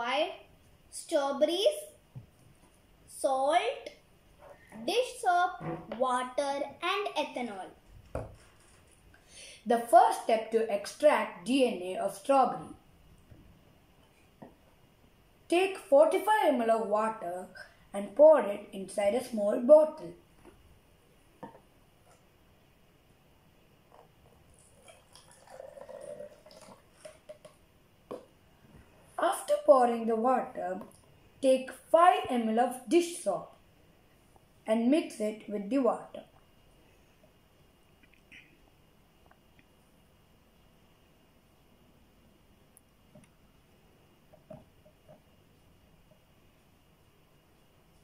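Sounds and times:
water trickling into bottle: 23.9 - 27.6.

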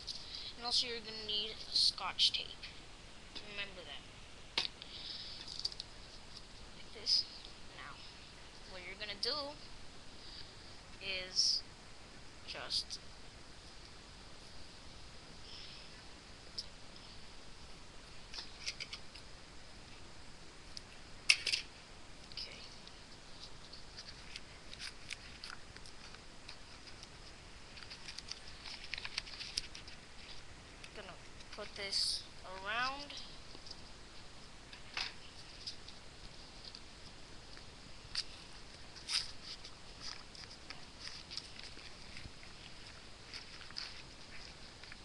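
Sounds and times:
faint background noise: 0.0 - 45.0
balloon rustling against plastic: 38.1 - 45.0.

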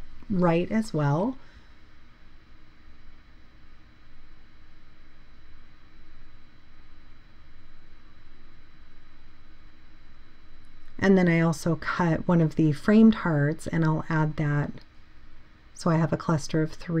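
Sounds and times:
faint high-pitched hum: 0.0 - 17.0
low background hiss: 0.0 - 17.0.

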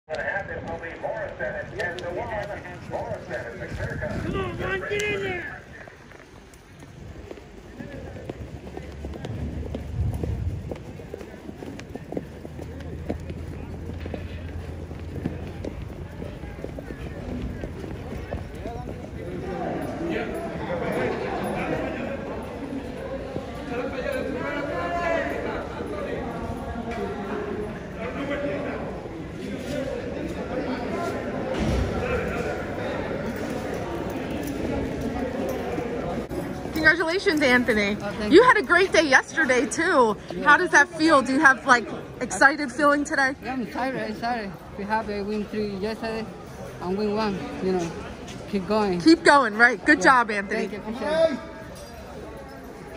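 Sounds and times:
horse hooves clopping on pavement: 0.1 - 20.6, 31.8 - 41.7
indistinct talking: 0.1 - 52.9.

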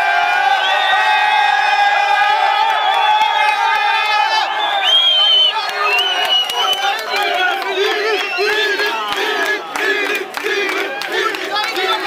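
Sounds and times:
football fans shouting and chanting: 0.0 - 12.0.

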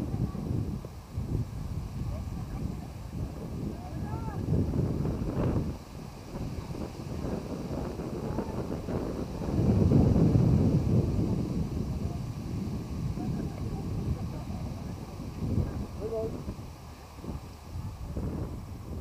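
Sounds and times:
faint distant voices: 0.0 - 19.0
wind buffeting microphone: 0.0 - 19.0.

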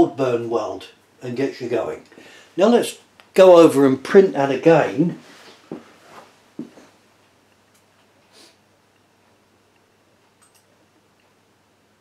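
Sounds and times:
man speaking: 0.0 - 5.2
soft footsteps: 5.2 - 7.0.

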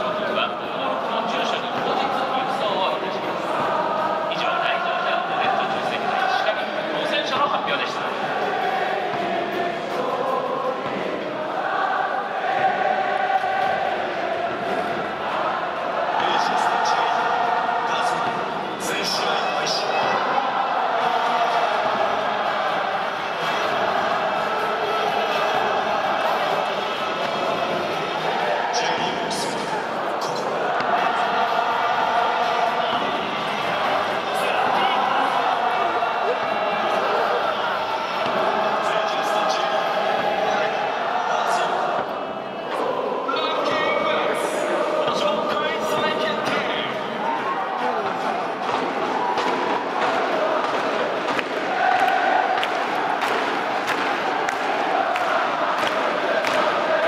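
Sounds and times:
crowd chanting in unison: 0.0 - 57.0
rhythmic thumps: 0.0 - 57.0.

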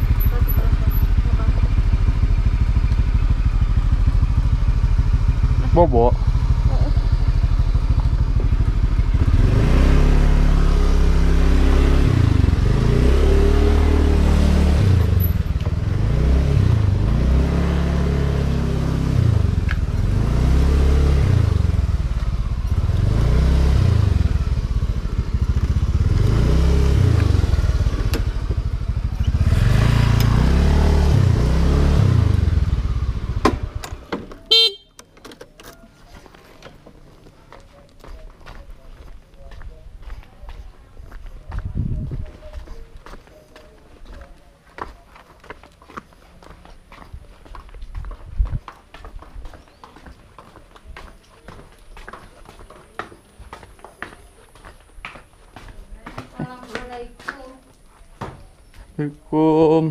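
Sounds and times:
motorcycle engine revving: 0.0 - 34.9.

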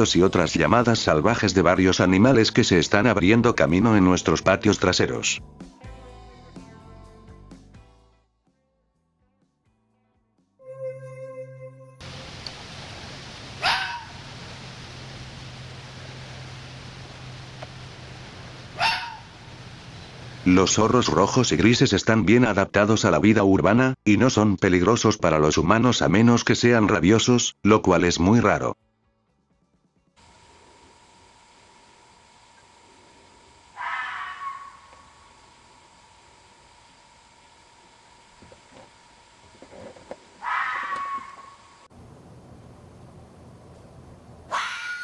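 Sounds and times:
fox barking: 13.6 - 14.3, 18.6 - 19.4, 33.7 - 35.1, 40.4 - 41.7, 44.5 - 45.0.

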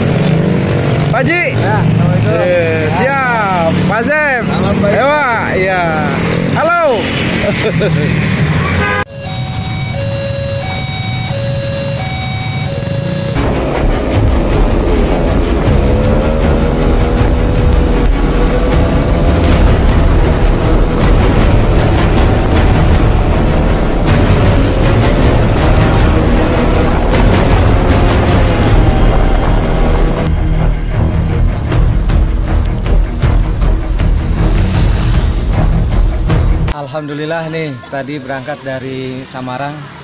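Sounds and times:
motorcycle engines: 0.0 - 30.3
electronic music notes: 9.1 - 34.7.

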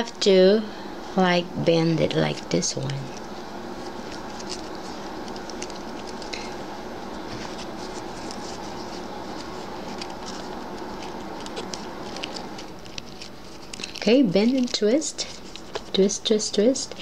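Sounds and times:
steady background hum: 0.0 - 17.0.

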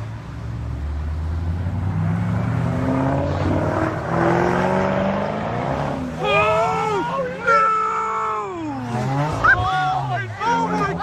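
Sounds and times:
car engine accelerating hard: 0.6 - 7.6, 8.2 - 11.0.

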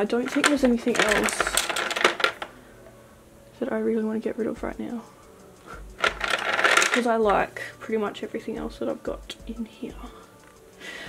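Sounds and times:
plastic tubes clattering: 0.0 - 2.6, 5.9 - 7.5.

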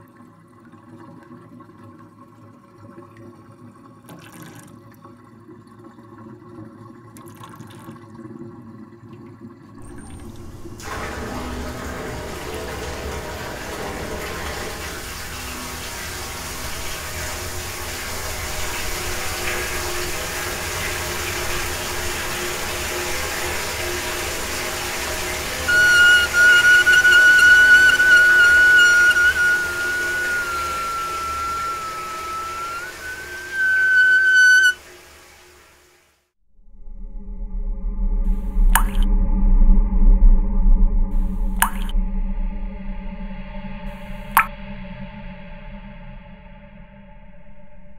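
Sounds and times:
low drone: 9.8 - 35.5, 36.6 - 47.9
shrill sustained tone: 9.8 - 35.5, 41.2 - 47.9
rushing noise: 9.8 - 35.9.

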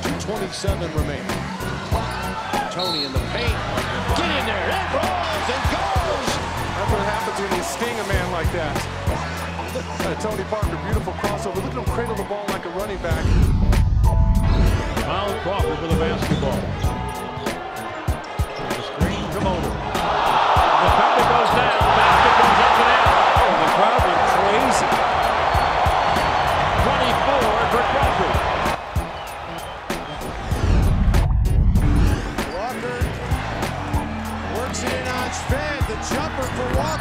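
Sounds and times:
crowd cheering: 1.3 - 12.9, 15.0 - 37.0
music with steady beat: 13.4 - 37.0.

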